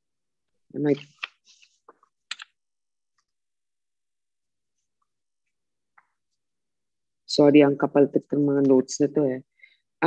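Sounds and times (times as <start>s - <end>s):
keys clicking and tapping: 2.3s - 2.5s.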